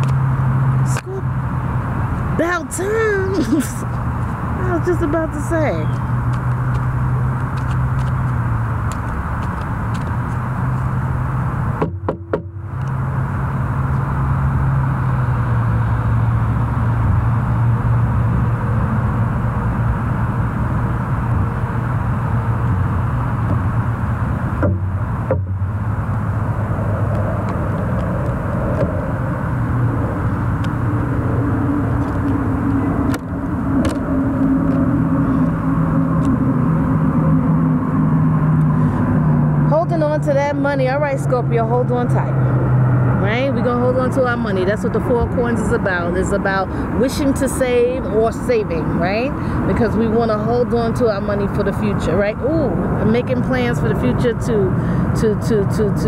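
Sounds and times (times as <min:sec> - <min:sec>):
low engine hum: 0:00.0 - 0:56.0
road traffic rumble: 0:00.0 - 0:56.0.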